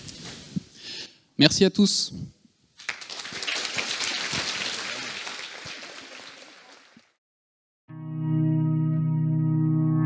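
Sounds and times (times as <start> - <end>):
audience applause: 2.8 - 7.2.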